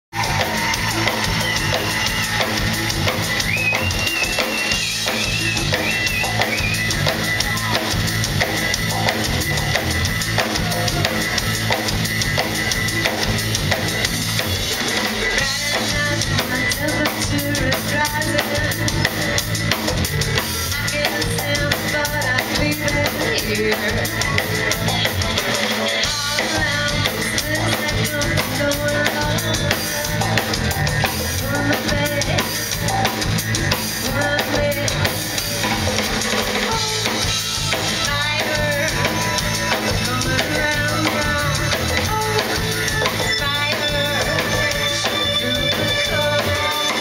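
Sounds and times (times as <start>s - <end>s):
bass line: 0.1s - 47.0s
drum kit beat: 0.1s - 47.0s
high held melody: 0.1s - 47.0s
keyboards: 0.1s - 47.0s.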